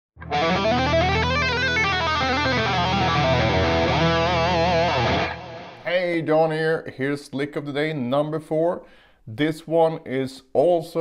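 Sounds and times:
distorted electric guitar run: 0:00.2 - 0:05.8.

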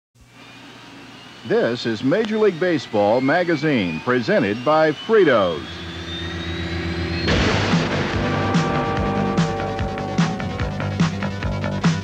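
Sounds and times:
thin rising whine: 0:00.2 - 0:12.0
theme music held chord: 0:05.4 - 0:12.0
loud crash: 0:06.5 - 0:11.3.

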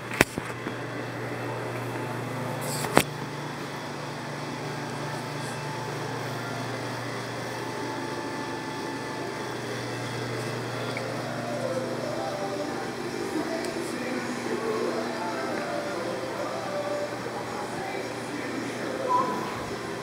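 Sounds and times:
steady low machine hum: 0:00.0 - 0:20.0.

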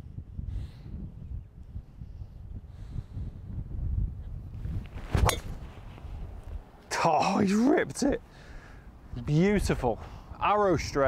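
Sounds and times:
wind rumble on microphone: 0:00.0 - 0:06.8
golf club striking ball: 0:05.2 - 0:05.6.

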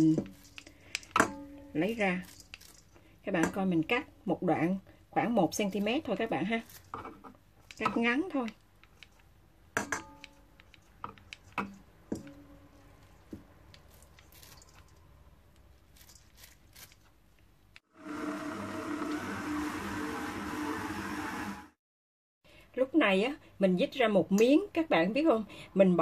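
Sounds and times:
scissors snipping noodles: 0:16.0 - 0:17.1
stand mixer humming: 0:18.0 - 0:21.7.

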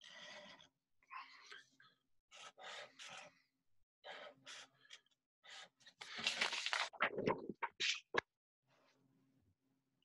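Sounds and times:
marker scratching on paper: 0:02.3 - 0:03.4.

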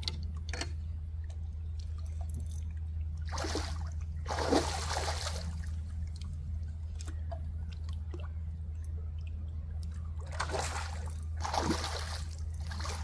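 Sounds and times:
steady low rumble: 0:00.0 - 0:13.0
water splashing: 0:03.2 - 0:06.3, 0:09.1 - 0:13.0.

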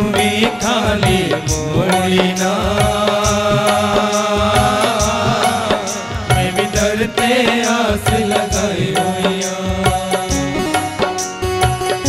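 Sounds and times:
man singing into microphone: 0:00.0 - 0:11.4
steady drone: 0:00.0 - 0:11.6
regular percussion beat: 0:00.0 - 0:12.0.

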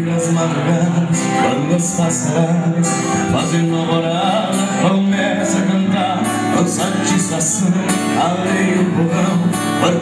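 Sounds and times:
man singing country song: 0:00.0 - 0:10.0
strummed acoustic guitar: 0:00.0 - 0:10.0.

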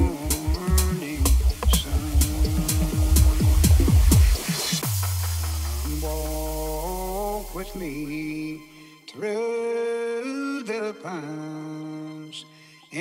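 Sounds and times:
tech house track: 0:00.0 - 0:08.2
hi-hats: 0:00.0 - 0:08.4
synth melody: 0:00.0 - 0:08.6
kick drum: 0:01.6 - 0:04.4.

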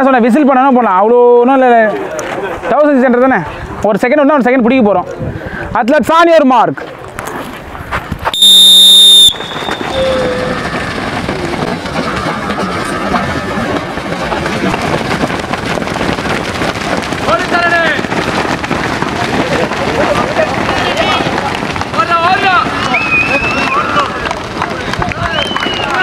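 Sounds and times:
many running feet: 0:00.0 - 0:05.7, 0:06.7 - 0:26.0
whistle blast: 0:08.3 - 0:10.6.

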